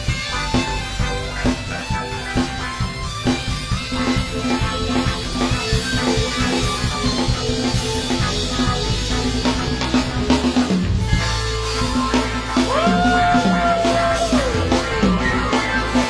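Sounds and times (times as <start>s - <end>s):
bass and guitar: 0.0s - 16.0s
drum kit steady beat: 0.0s - 16.0s.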